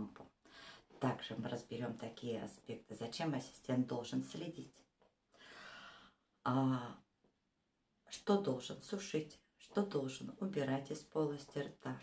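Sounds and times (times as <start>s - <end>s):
woman breathing in: 0.4s - 0.9s, 5.3s - 6.3s.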